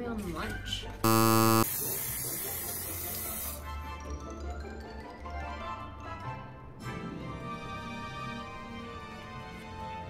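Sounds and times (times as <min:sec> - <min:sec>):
wrong-answer buzzer: 0:01.1 - 0:01.7
hiss: 0:01.7 - 0:03.6
background music: 0:03.8 - 0:10.0.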